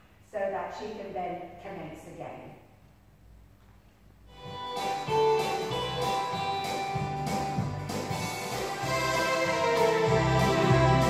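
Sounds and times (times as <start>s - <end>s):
dance music with steady beat: 4.3s - 11.0s.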